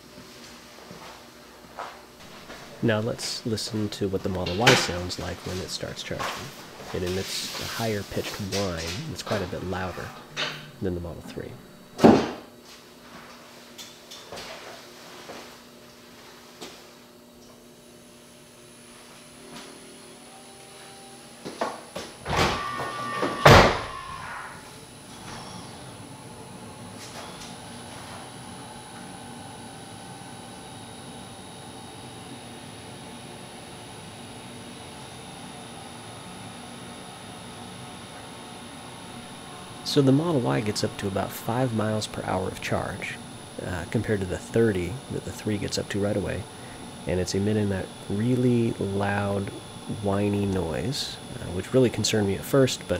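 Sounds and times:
high-pitched whine: 2.8 - 12.1, 18.9 - 32.4, 34.3 - 52.9
low hum: 37.0 - 52.9.

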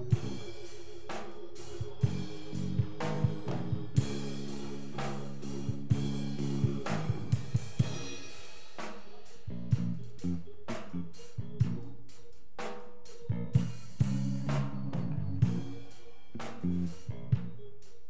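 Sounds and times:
sustained low chords: 0.0 - 0.6, 1.8 - 8.3, 9.4 - 12.2, 13.3 - 17.7
drum kit: 0.0 - 18.0.

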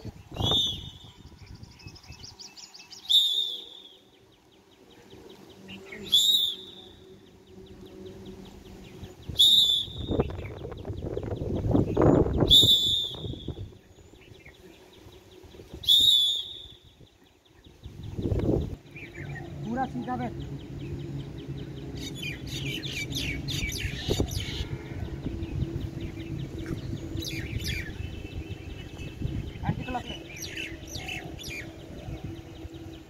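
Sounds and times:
low noise: 0.0 - 33.0
short sharp whistle blasts: 3.1 - 3.9, 9.4 - 10.2, 12.5 - 13.6, 15.8 - 16.8.

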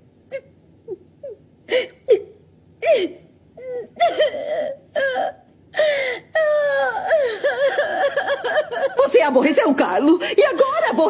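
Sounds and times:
woman crying: 0.3 - 11.0.

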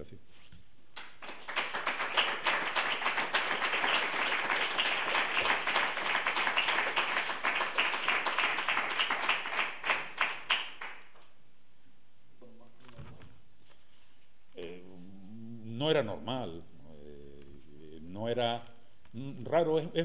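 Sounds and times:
audience applauding: 1.0 - 11.2.

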